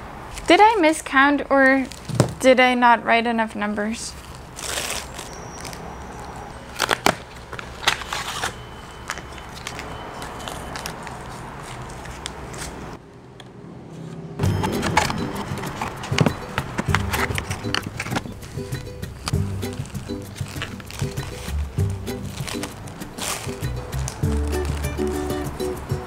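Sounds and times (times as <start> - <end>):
cardboard box and plastic handling: 6.7 - 12.9, 14.0 - 25.4
background music: 14.4 - 26.0.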